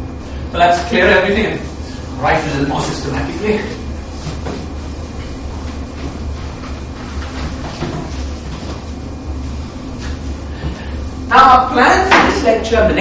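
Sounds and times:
steady low hum: 0.0s - 13.0s
eraser wiping blackboard: 0.8s - 11.5s.

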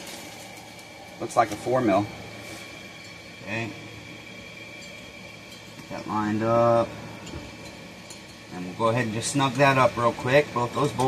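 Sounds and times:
faint high whine: 0.0s - 11.0s
low machine hum: 0.0s - 11.0s.

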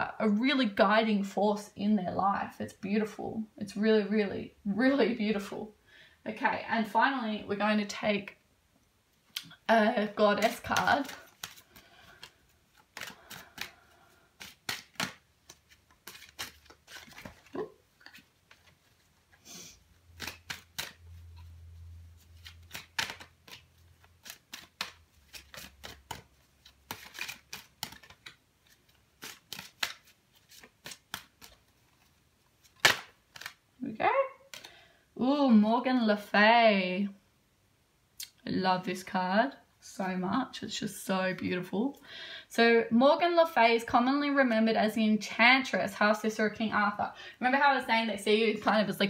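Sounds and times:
cards being shuffled: 10.3s - 33.7s, 34.5s - 34.8s.

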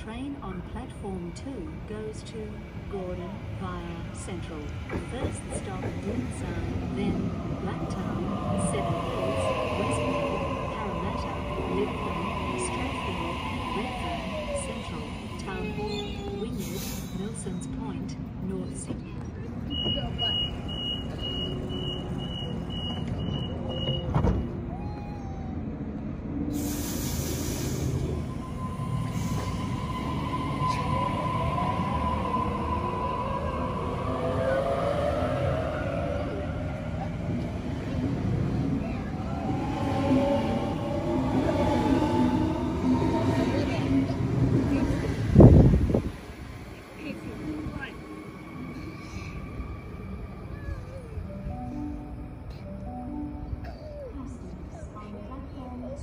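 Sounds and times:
door-closing beeps: 19.7s - 24.6s
train air hiss: 26.5s - 28.2s.

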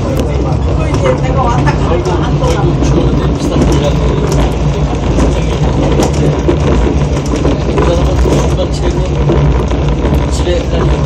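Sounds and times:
diesel engine drone: 0.0s - 11.0s
wheels running on rails: 0.0s - 11.0s.

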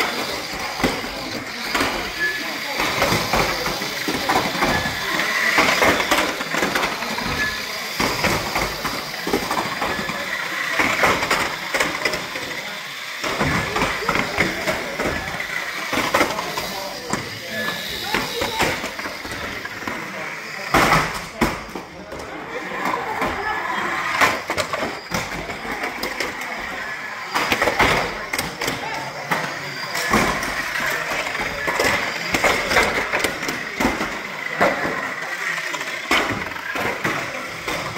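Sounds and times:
toy car motor whine: 0.0s - 37.9s.

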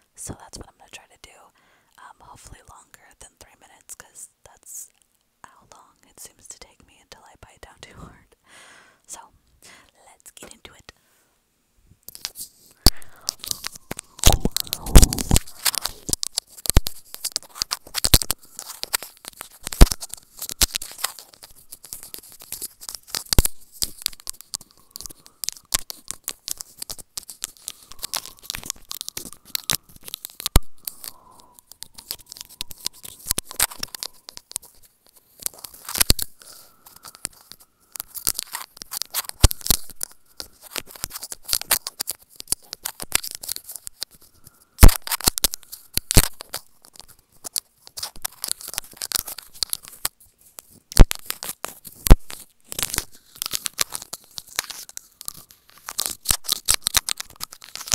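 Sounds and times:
teeth biting earbud microphone: 12.1s - 50.1s, 50.7s - 57.9s.

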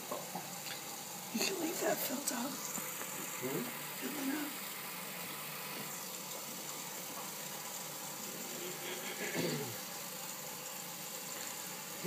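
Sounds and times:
faucet water running into sink: 0.0s - 12.0s.

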